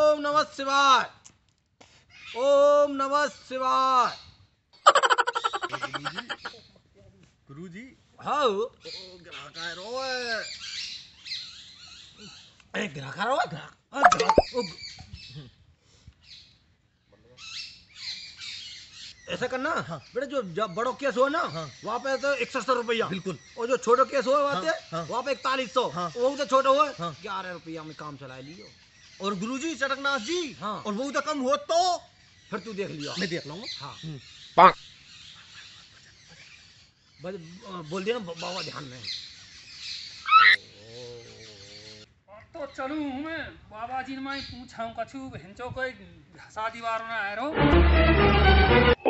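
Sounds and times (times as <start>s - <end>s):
birds squawking and chirping: 2.1s - 2.6s, 8.8s - 13.0s, 14.0s - 15.6s, 16.2s - 43.4s
loud high chirp: 14.0s - 15.4s, 32.3s - 40.7s.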